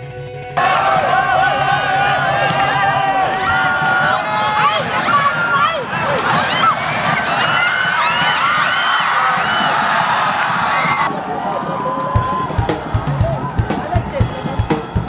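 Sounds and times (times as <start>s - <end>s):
football crowd shouting and cheering: 0.6s - 15.0s.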